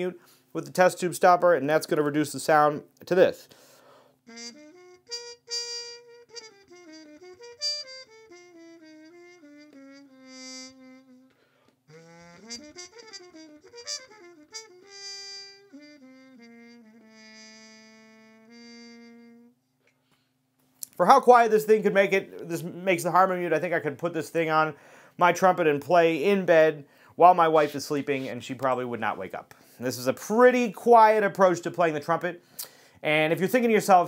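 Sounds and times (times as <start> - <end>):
muted trumpet melody: 4.2 - 19.6.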